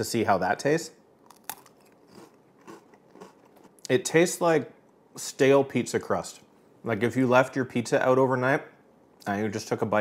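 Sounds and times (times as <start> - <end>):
cracker snapping: 1.2 - 3.7
faint crunching chewing: 1.2 - 4.0.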